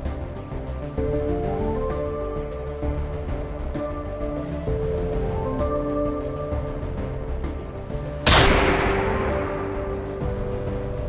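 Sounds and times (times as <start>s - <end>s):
dark soundtrack music: 0.0s - 11.0s
handgun shot: 8.3s - 9.7s.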